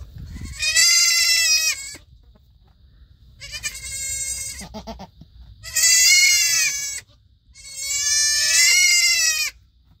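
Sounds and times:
goat kid bleating: 0:00.0 - 0:02.3, 0:03.3 - 0:09.7.

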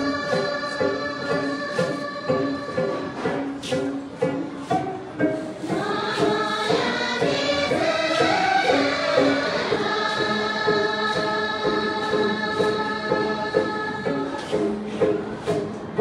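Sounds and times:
women singing together: 0:00.0 - 0:03.8, 0:05.6 - 0:15.6.

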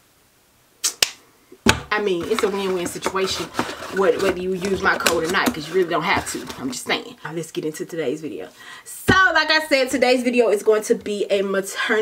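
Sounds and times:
brief hiss: 0:00.8 - 0:01.1
sharp click: 0:00.8 - 0:01.2
woman speaking: 0:01.8 - 0:12.0.

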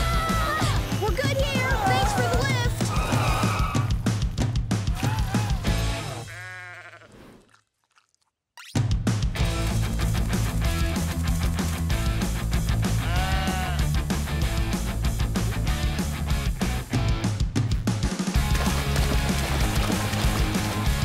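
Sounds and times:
cartoon soundtrack music: 0:00.0 - 0:06.3, 0:08.7 - 0:21.0
upbeat rock track: 0:00.0 - 0:06.3, 0:08.9 - 0:21.0
cartoon sheep bleating: 0:04.9 - 0:07.2, 0:13.0 - 0:13.9.

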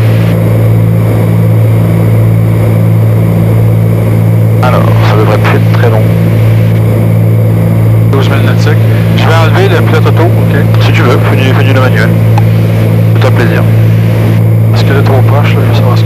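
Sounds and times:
aircraft engines droning in flight: 0:00.0 - 0:16.0.

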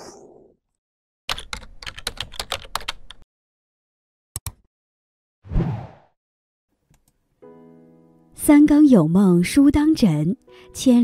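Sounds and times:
typing on computer keyboard: 0:01.3 - 0:03.2.

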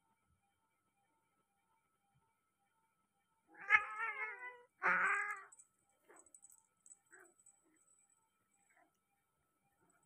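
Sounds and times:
cat yowling: 0:03.6 - 0:05.6.

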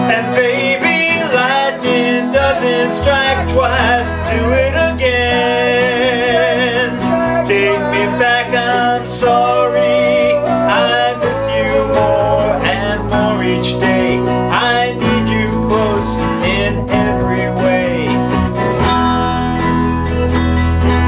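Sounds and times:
men singing: 0:00.0 - 0:19.5
strummed acoustic guitar: 0:00.0 - 0:21.0.

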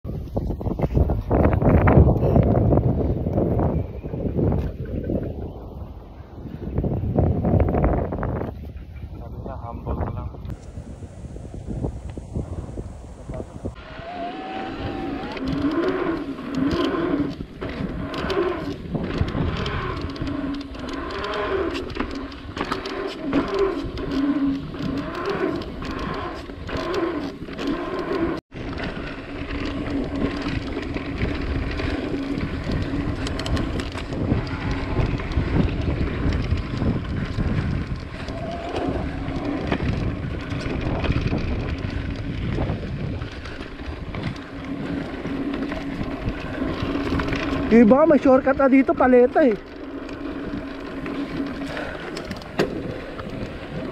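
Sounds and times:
bike tyre and drivetrain hum: 0:00.1 - 0:53.9
tyres rumbling on dirt: 0:13.5 - 0:53.9
bike knocks and rattles: 0:15.6 - 0:53.9.

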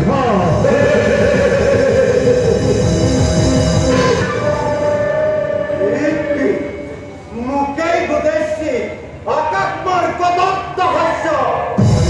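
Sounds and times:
stage music: 0:00.0 - 0:08.2, 0:11.6 - 0:12.0.

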